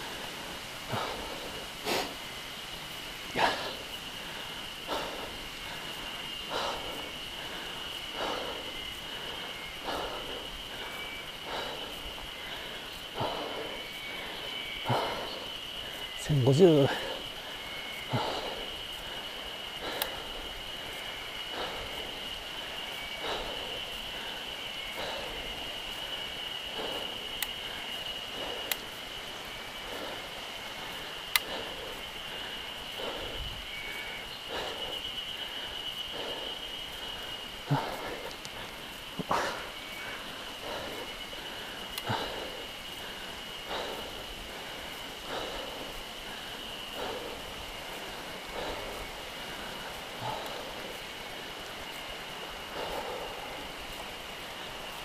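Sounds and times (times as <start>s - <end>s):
high-pitched insect drone: 0.0s - 55.0s.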